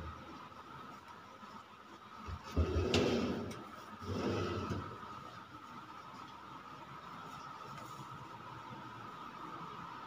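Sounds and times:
wire basket drawer sliding on runners: 2.5 - 5.0.

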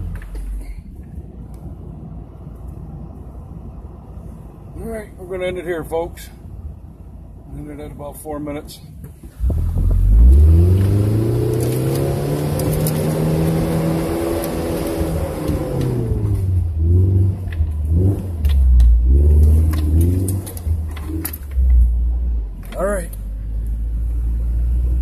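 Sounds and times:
truck engine revving: 9.4 - 25.0.

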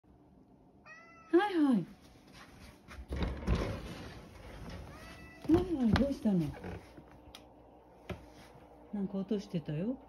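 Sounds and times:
cat meowing faintly: 0.8 - 1.5, 4.9 - 5.6
woman speaking: 1.3 - 2.0, 5.4 - 6.8, 8.9 - 10.0.

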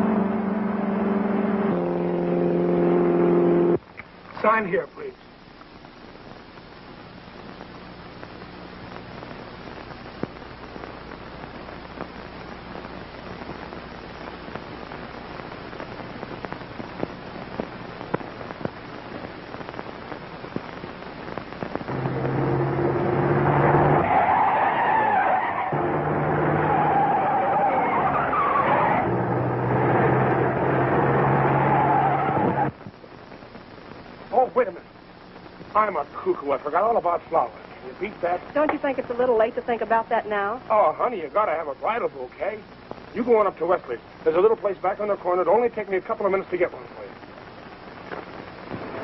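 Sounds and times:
film soundtrack hiss and crackle: 0.0 - 49.0
car engine running hard: 21.9 - 24.9, 25.7 - 32.7
tyres squealing: 23.6 - 29.2.

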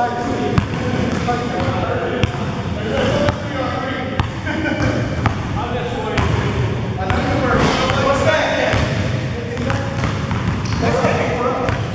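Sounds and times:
players' voices: 0.0 - 11.9
basketball bouncing on gym floor: 0.5 - 3.5, 4.2 - 5.6, 6.2 - 8.0, 8.6 - 11.9.

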